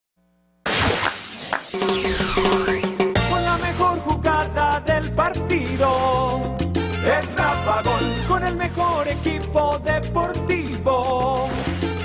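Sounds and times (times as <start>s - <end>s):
theme music with regular beat: 1.6s - 10.7s.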